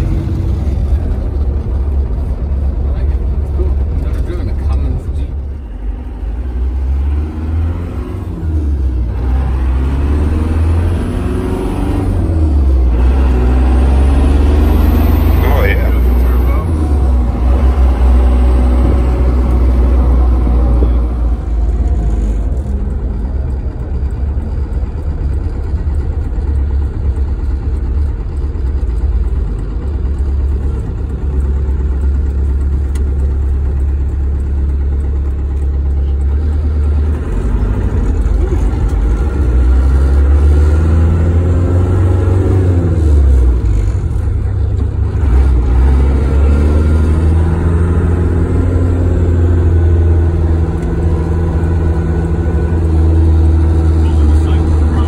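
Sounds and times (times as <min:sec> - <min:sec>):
diesel engine rumble in cab: 0:00.0 - 0:55.0.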